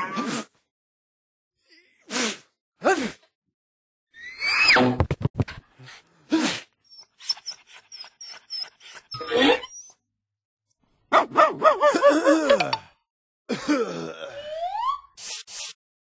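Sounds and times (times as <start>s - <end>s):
dog barking: 11.1s - 12.2s.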